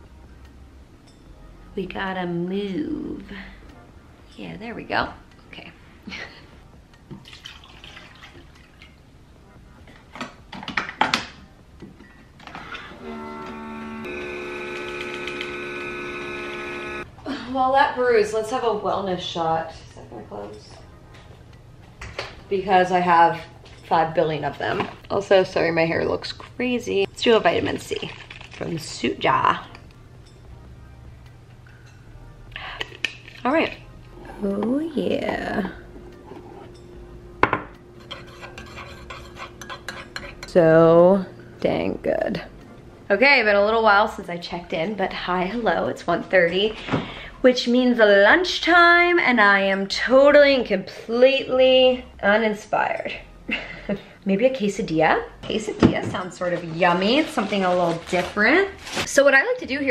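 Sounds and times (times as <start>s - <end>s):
coffee maker humming: 12.9s - 17.1s
metal spoon stirring in mug: 38.0s - 40.6s.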